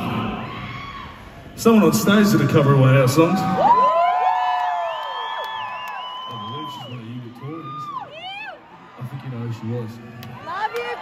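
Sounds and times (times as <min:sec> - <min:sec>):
audience whooping and cheering: 0:03.2 - 0:11.0.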